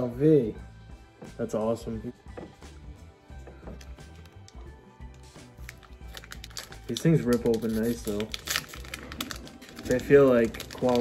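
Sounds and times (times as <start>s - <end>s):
quiet background music: 0.0s - 11.0s
foil packs and cards crinkling: 5.1s - 11.0s.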